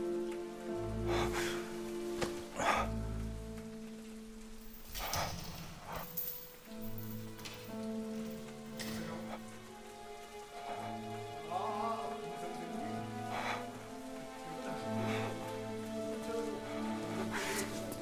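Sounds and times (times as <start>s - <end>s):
rain hissing: 0.0s - 18.0s
slow sustained score music: 0.0s - 18.0s.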